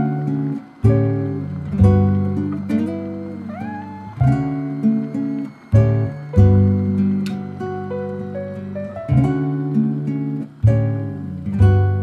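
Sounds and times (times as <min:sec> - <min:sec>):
soft acoustic guitar music: 0:00.0 - 0:12.0
cat meowing: 0:03.4 - 0:04.7.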